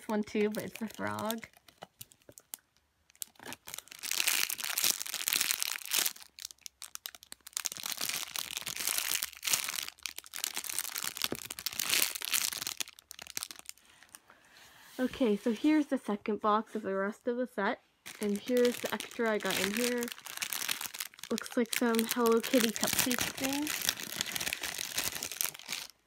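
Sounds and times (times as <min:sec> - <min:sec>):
plastic bag crinkling: 0:00.0 - 0:14.2, 0:18.1 - 0:26.0.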